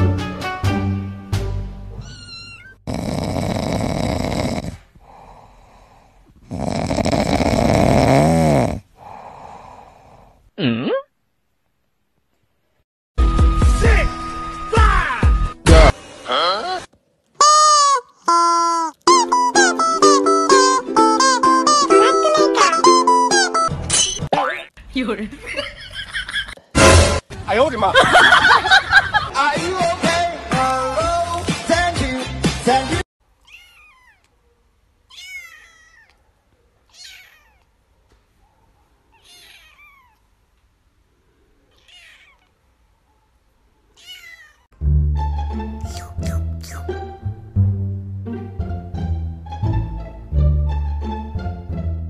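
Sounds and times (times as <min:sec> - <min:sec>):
kitten meowing: 0:02.0 - 0:02.8, 0:33.4 - 0:34.3, 0:35.1 - 0:36.2, 0:36.9 - 0:37.7, 0:39.1 - 0:40.2, 0:44.0 - 0:44.6
kitten mewing: 0:02.0 - 0:02.8, 0:35.1 - 0:36.2, 0:45.8 - 0:47.0.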